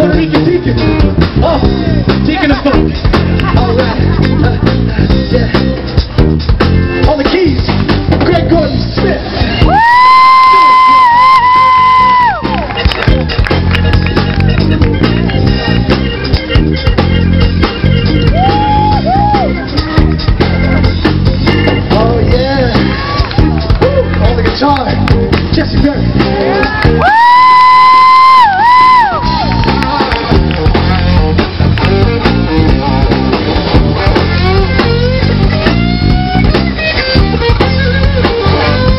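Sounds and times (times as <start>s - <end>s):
live rock band: 0.0s - 38.9s.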